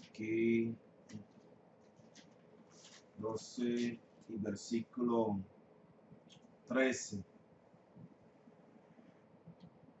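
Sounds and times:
book pages rustling: 1.1 - 4.3.

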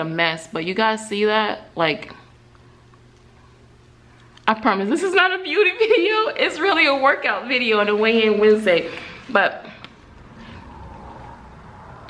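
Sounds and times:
room hum and hiss: 0.0 - 12.0.

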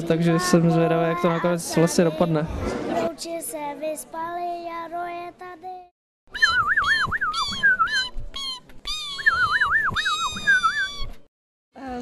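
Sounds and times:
warbling bird-like whistle calls: 6.3 - 11.2.

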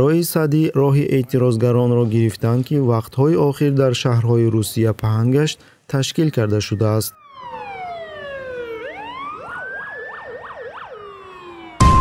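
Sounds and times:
police siren wailing and yelping: 6.6 - 12.0.

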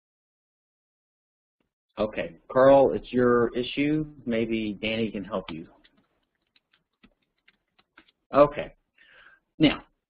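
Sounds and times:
computer keys clicking: 5.4 - 8.2.

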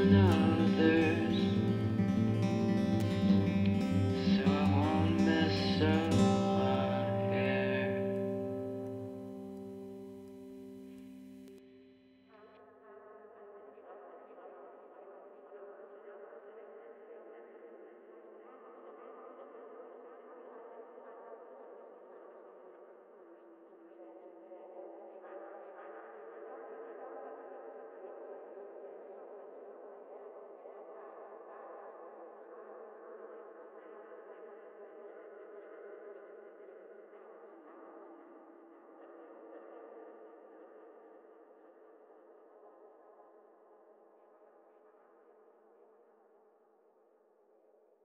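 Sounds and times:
muffled drone of held tones: 0.0 - 12.2.

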